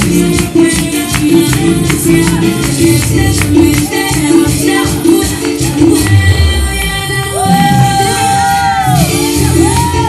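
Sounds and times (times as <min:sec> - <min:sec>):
upbeat latin dance music: 0:00.0 - 0:10.0.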